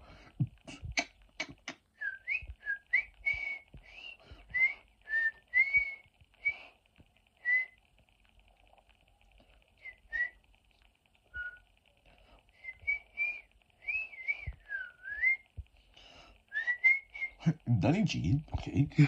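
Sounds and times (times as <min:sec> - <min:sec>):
person whistling short notes: 0:01.0 - 0:06.6, 0:12.6 - 0:15.4, 0:16.5 - 0:17.4.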